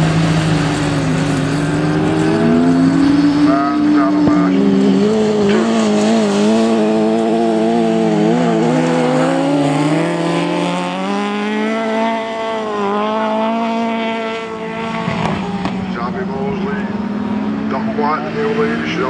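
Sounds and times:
race car engines revving: 0.0s - 19.0s.

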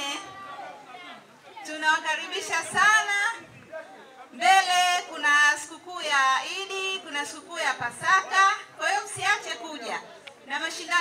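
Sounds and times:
woman talking into a microphone: 0.0s - 0.4s, 1.6s - 3.5s, 4.3s - 11.0s
low background chatter: 0.0s - 5.2s.

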